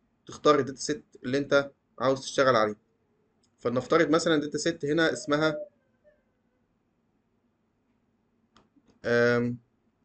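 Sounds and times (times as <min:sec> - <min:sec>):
drawn-out vocal sound: 0:04.3 - 0:06.3.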